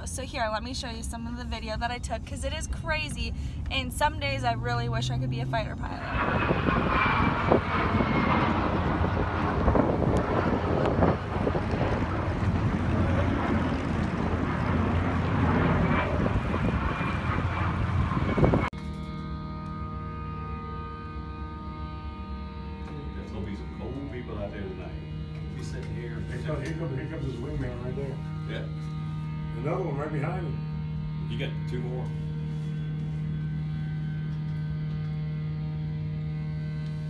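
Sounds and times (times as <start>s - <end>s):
jet flying overhead: 2.5s - 19.2s
music with sustained notes: 6.2s - 37.0s.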